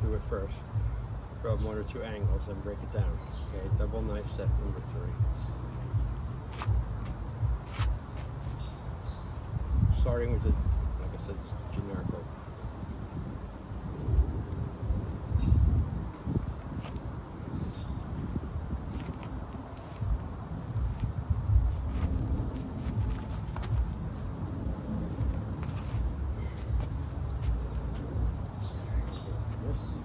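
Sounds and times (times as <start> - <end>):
wind buffeting microphone: 0.0 - 30.0
scuffs from movement: 6.5 - 9.2, 16.1 - 20.3, 20.9 - 30.0.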